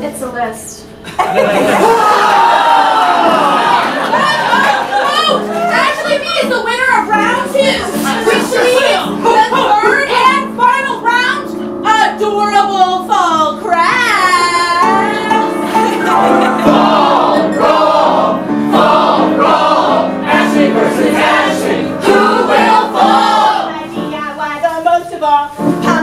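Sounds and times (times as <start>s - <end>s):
live instrumental accompaniment: 14.3s - 24.3s
cast singing: 14.8s - 23.9s.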